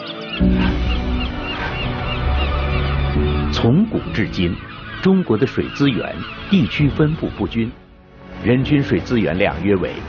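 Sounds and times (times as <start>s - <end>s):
waterbirds calling: 0.0s - 10.0s.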